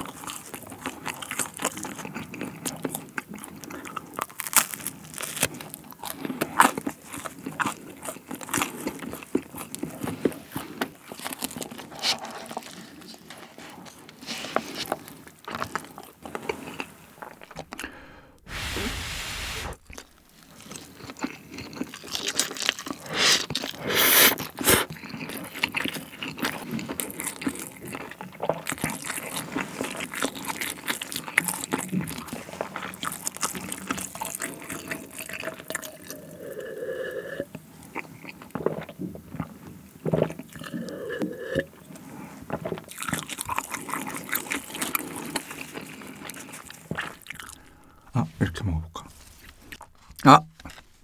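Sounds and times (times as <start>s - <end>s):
wet chewing: 0.0s - 14.0s, 14.6s - 18.2s, 19.6s - 36.8s, 37.4s - 48.2s, 49.0s - 51.0s
slurping spaghetti: 6.1s - 48.1s.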